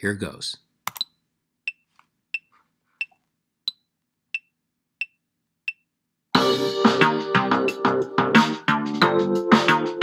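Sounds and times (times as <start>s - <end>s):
metronome clicks: 4.4s - 5.9s.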